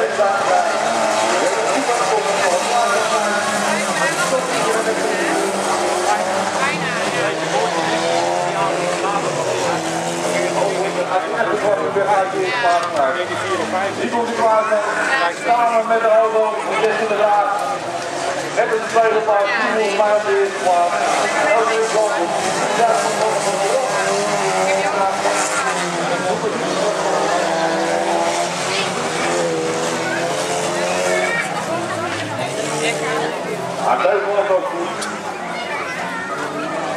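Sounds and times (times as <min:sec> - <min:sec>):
racing car engines revving: 0:00.0 - 0:36.9.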